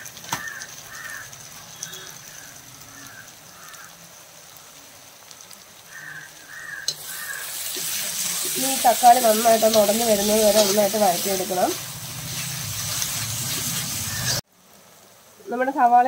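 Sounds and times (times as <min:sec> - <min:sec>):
onions and tomatoes frying: 0:00.0 - 0:16.0
crow cawing: 0:00.3 - 0:04.0, 0:05.9 - 0:07.7.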